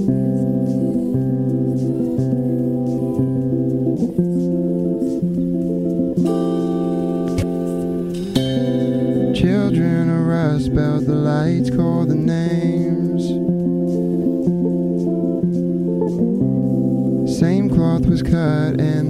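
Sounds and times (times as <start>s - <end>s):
live band playing: 0.0s - 10.1s
wavering bending melodic line: 0.0s - 18.0s.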